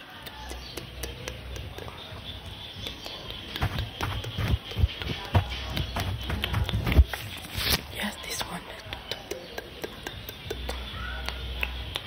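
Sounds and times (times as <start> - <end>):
soft low thumps: 2.4 - 7.4.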